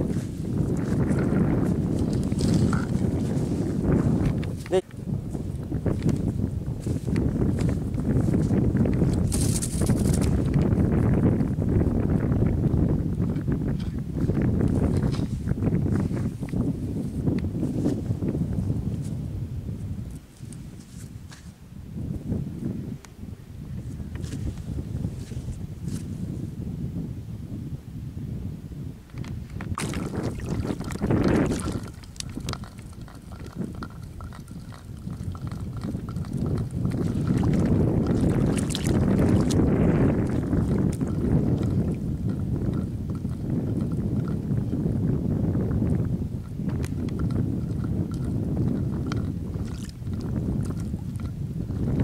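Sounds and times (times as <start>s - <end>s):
wind buffeting microphone: 0.0s - 52.0s
small clicks and rustles: 8.9s - 10.7s, 30.4s - 39.6s.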